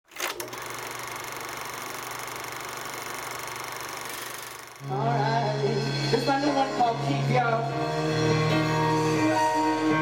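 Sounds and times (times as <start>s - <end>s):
fast mechanical clatter: 0.1s - 4.8s.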